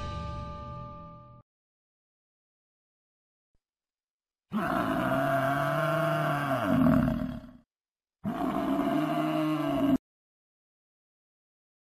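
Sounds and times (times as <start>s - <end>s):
deep animal roar: 4.5s - 10.0s.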